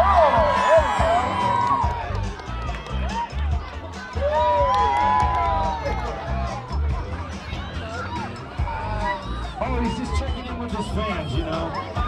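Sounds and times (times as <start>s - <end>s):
background music with bass beat: 0.0s - 12.0s
crowd cheering: 0.0s - 12.0s.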